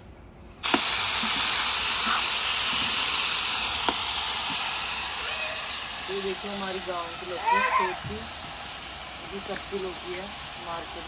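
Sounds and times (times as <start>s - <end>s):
vegetables sizzling in hot oil: 0.6s - 11.0s.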